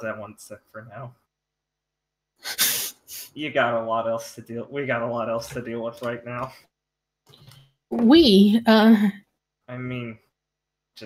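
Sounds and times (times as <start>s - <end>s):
burst of breath into microphone: 2.4s - 3.4s.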